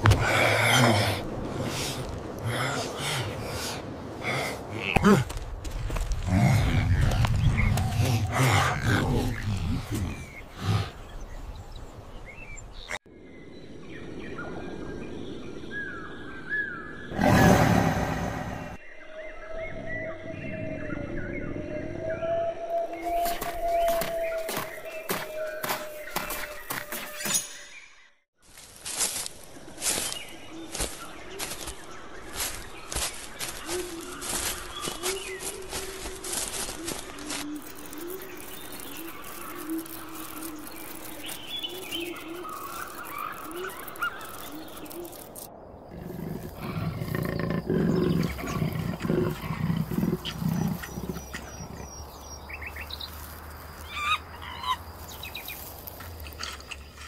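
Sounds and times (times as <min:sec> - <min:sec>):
small birds chirping: 0:01.6 - 0:22.0, 0:22.7 - 0:57.0
sliding chirp-like calls: 0:32.4 - 0:57.0
dove cooing: 0:46.0 - 0:52.0.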